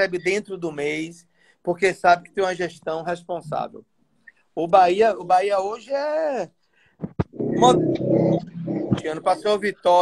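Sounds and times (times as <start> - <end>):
men talking on a video call: 0.0 - 10.0.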